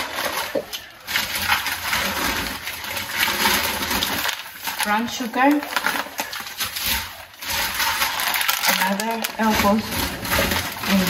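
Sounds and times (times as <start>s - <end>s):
plastic bag crinkling: 0.0s - 11.0s.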